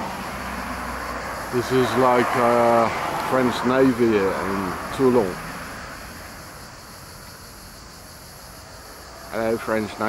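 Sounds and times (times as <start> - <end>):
high-pitched insect chirring: 0.0 - 10.0.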